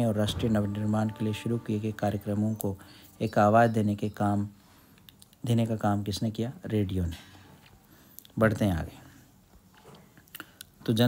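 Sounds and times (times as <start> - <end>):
person talking: 0.0 - 3.9.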